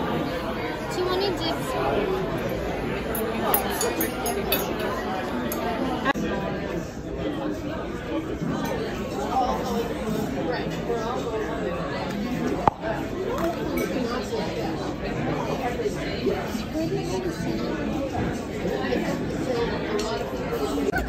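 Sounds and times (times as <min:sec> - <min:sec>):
diners chattering: 0:00.0 - 0:21.0.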